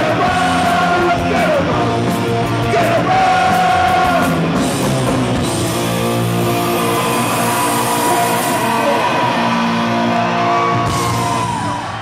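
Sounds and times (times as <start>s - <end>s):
punk rock band ringing chord: 0.0s - 11.5s.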